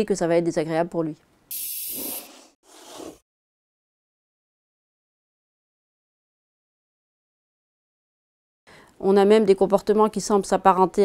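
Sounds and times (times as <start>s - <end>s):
burst of hiss: 1.5s - 2.3s.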